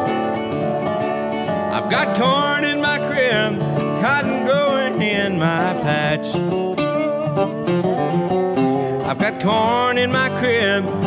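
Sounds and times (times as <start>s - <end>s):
resonator guitar rhythm: 0.0s - 11.0s
slide resonator guitar: 0.0s - 11.0s
person singing: 1.7s - 6.6s, 9.0s - 11.0s.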